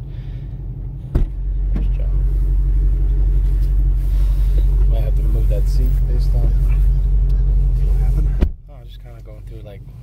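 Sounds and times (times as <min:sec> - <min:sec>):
car engine idling: 0:00.0 - 0:10.0.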